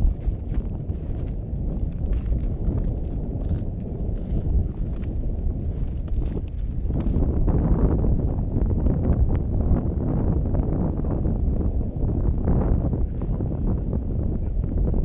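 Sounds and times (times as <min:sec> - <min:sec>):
boots crunching on snow: 0:00.0 - 0:07.2
wind buffeting microphone: 0:00.0 - 0:15.0.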